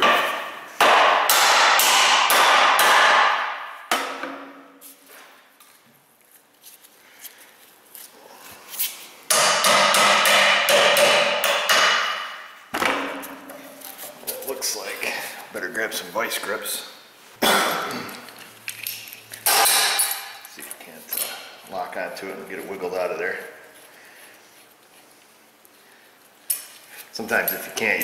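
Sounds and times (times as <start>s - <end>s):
hammer striking steel punch: 0.0s - 4.6s, 9.3s - 13.2s.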